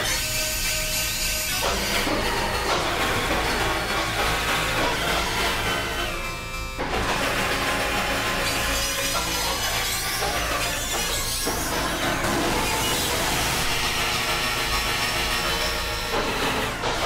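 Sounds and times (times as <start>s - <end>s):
electronic noise music: 0.0s - 17.0s.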